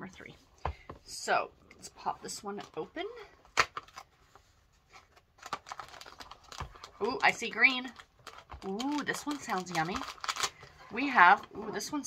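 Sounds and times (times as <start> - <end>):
packaging clicks and rustles: 4.9 - 11.5.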